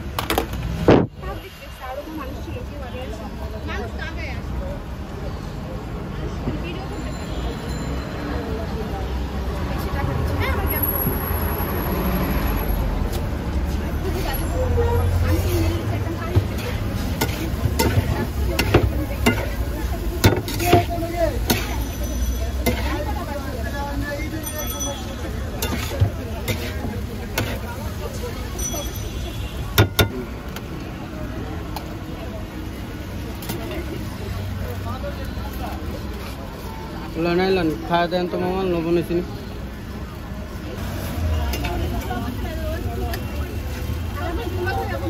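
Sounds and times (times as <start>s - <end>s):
traffic rumble: 0.0s - 45.0s
metal utensils clattering on dishes: 15.3s - 23.2s, 24.5s - 27.7s.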